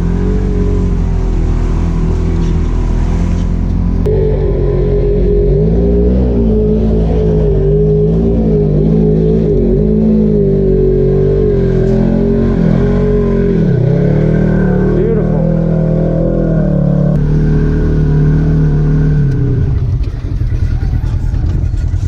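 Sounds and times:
vehicle engine running under load: 0.0s - 22.0s.

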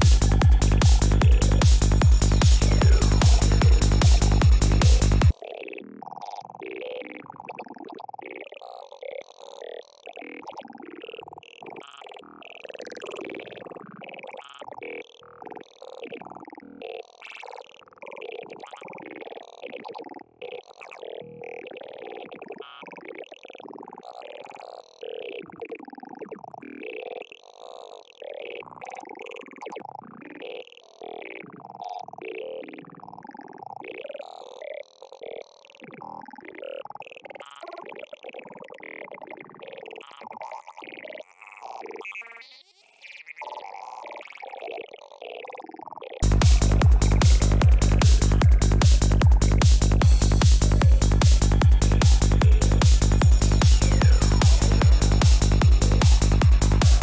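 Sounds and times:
gurgling synthesizer sounds: 0.0s - 8.0s, 46.1s - 57.0s.

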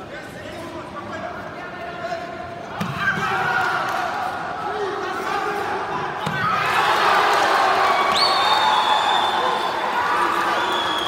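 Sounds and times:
spectators cheering: 6.4s - 11.0s.

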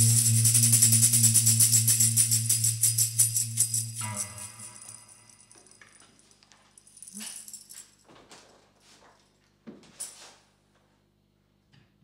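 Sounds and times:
tambourine jingling: 0.0s - 6.0s, 6.8s - 8.0s.

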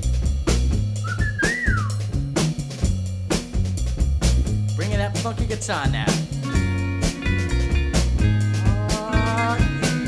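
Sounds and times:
bass line: 0.0s - 10.0s
drum beat: 0.0s - 10.0s.

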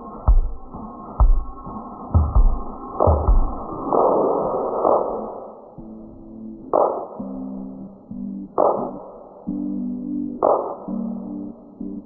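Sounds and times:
kick drum: 0.3s - 3.7s.

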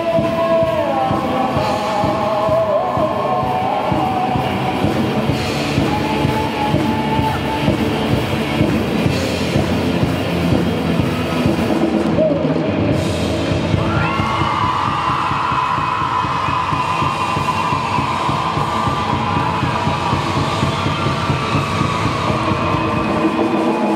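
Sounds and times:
bass guitar: 0.0s - 23.9s
drum kit: 0.0s - 23.9s.

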